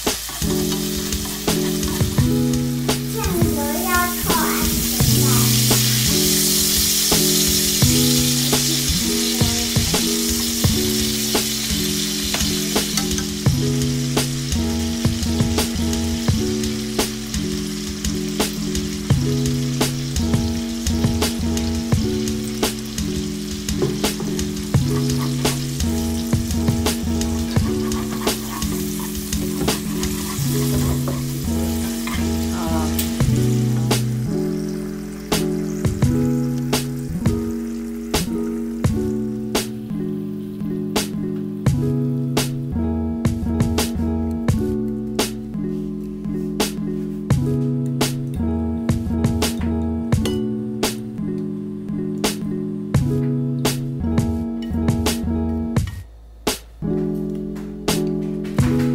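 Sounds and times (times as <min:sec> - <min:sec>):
ginger sizzling in hot oil: 0:00.0 - 0:41.1.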